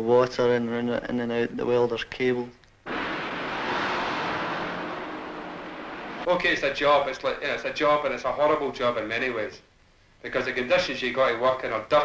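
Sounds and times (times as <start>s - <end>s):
steady rushing hiss: 2.9s - 8.9s.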